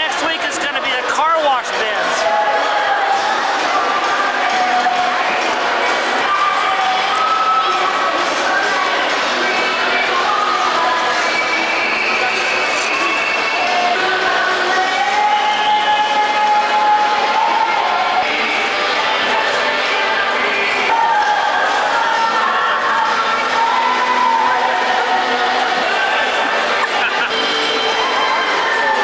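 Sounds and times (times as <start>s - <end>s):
crowd chattering and calling out: 0.0s - 29.0s.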